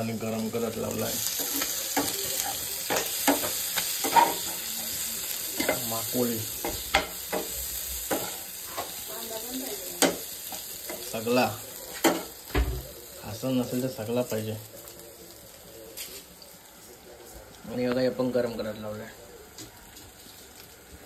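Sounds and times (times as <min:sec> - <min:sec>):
food sizzling in a pan: 0:00.0 - 0:21.0.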